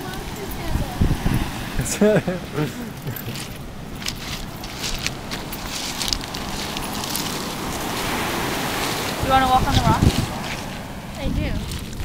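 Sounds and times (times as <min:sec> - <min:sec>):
surf: 0:00.0 - 0:12.0
wind: 0:00.0 - 0:12.0
footsteps crunching on pebbles: 0:02.9 - 0:12.0.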